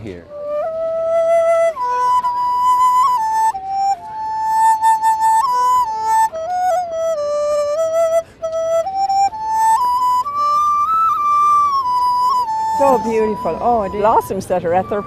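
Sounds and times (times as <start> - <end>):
bamboo flute melody: 0.0 - 15.0.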